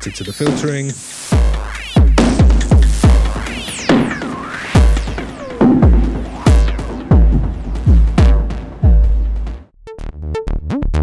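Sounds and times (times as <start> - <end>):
heavy kick drum: 0.0 - 3.6, 4.8 - 9.7
electronic drum beat: 0.0 - 9.7
falling filter sweep: 1.2 - 9.3.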